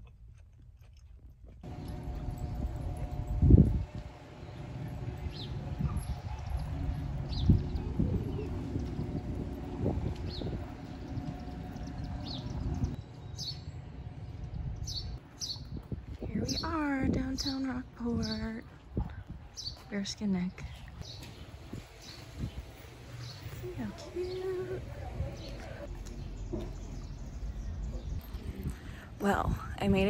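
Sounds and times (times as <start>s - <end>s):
wind rumble: 1.7s - 19.9s.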